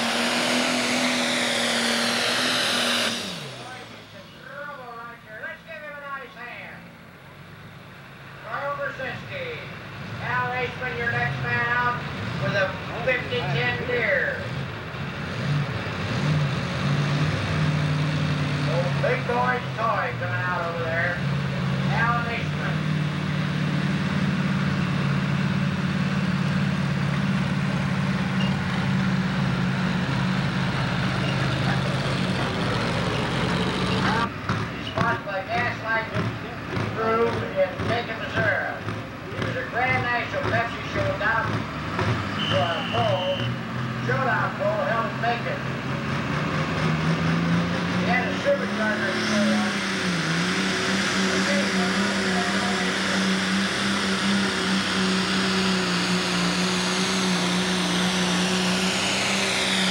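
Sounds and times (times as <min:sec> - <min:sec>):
lower engine sound: 0:00.0 - 0:06.2, 0:06.9 - 0:59.9
tractor diesel engine under load: 0:00.0 - 0:59.9
crowd voices: 0:31.1 - 0:41.6.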